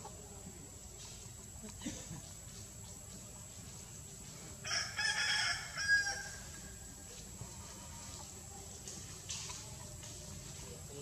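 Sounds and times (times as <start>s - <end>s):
rooster crowing: 4.6s - 6.4s.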